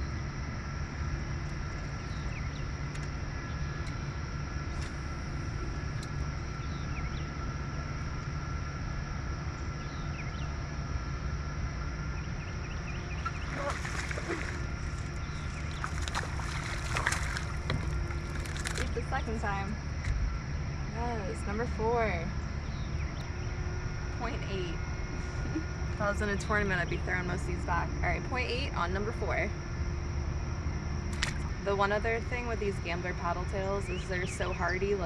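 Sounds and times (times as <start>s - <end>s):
low hum: 0.0s - 35.0s
fish splashing at water surface: 13.2s - 19.0s.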